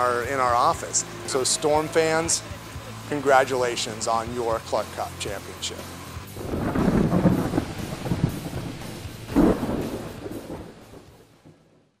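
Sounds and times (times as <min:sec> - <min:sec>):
rain: 0:06.0 - 0:12.0
rumbling thunder: 0:06.4 - 0:11.8
sharp thunder crack: 0:06.4 - 0:11.8.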